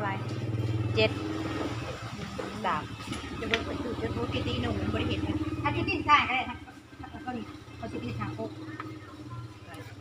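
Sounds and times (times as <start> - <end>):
woman speaking: 0.0 - 1.3, 2.1 - 8.7
passing vehicle engine drone: 0.0 - 10.0.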